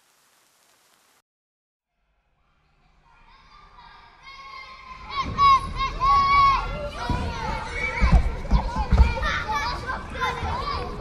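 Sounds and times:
children chattering and calling out: 2.9 - 11.0.

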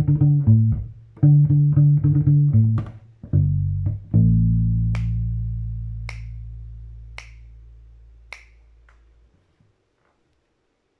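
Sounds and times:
finger snaps: 4.8 - 9.1.

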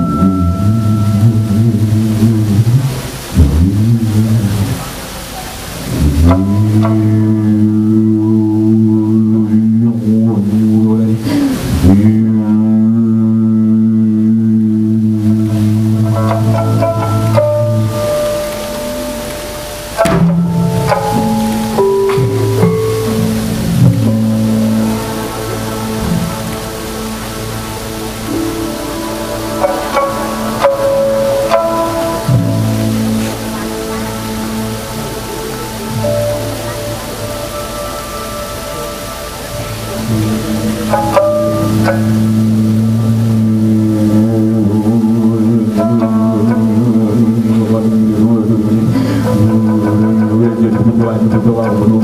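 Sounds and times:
low wavering musical drone: 0.0 - 52.0
river water rushing: 0.0 - 52.0.

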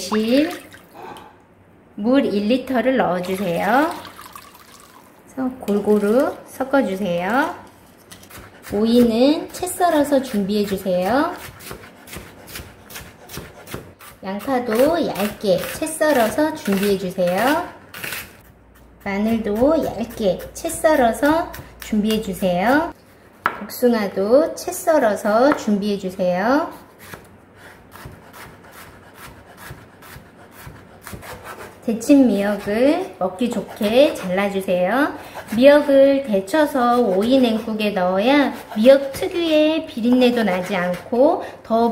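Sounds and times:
knife slicing fruit on board: 8.0 - 23.7, 26.7 - 34.8, 35.4 - 41.4
knife tapping cutting board: 23.4 - 23.7.

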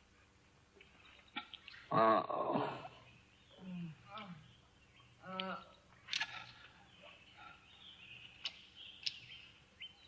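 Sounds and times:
birds chirping: 0.1 - 10.0.

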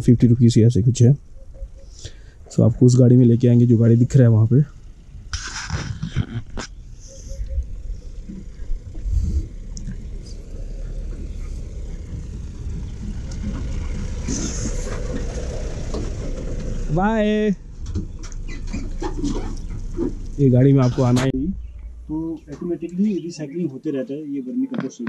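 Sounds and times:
truck engine driving on dirt: 0.0 - 23.9.

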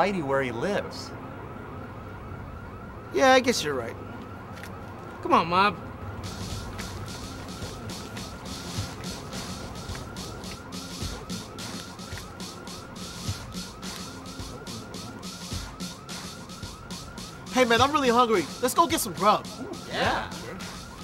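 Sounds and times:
low street rumble: 0.0 - 21.0
siren yelping: 0.0 - 21.0.

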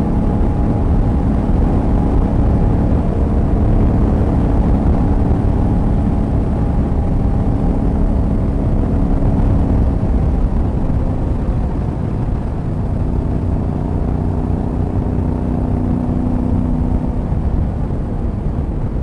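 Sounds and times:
motorcycle engine running: 0.0 - 19.0
wind rumble on microphone: 0.0 - 19.0.

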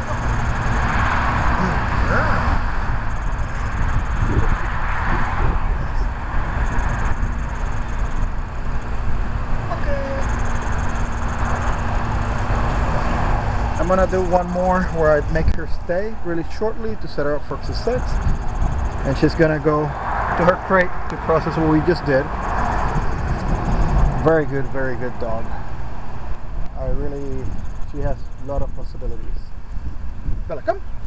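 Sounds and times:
low outdoor rumble: 0.0 - 31.0.

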